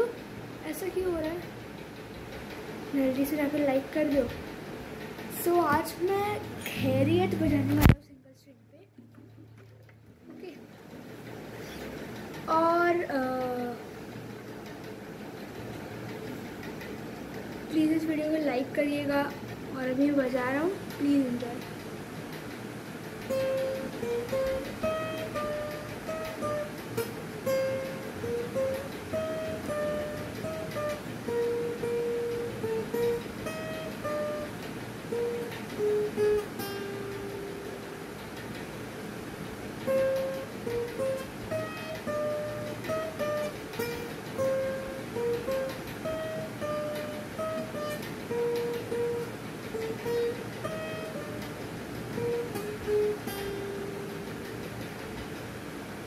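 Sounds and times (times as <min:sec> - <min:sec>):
plucked acoustic guitar melody: 0:02.6 - 0:04.5, 0:05.2 - 0:13.8, 0:23.2 - 0:38.4, 0:39.6 - 0:55.2.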